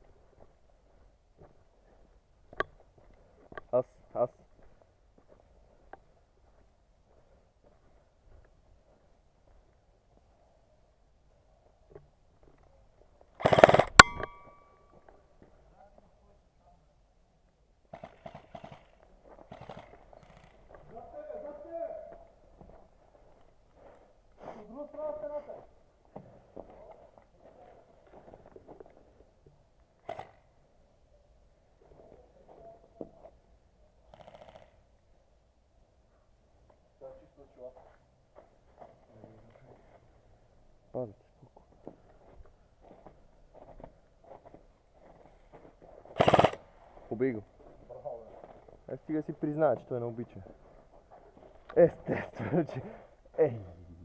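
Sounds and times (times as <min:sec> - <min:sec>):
airsoft rifle burst: 0:13.4 - 0:14.3, 0:46.2 - 0:46.6.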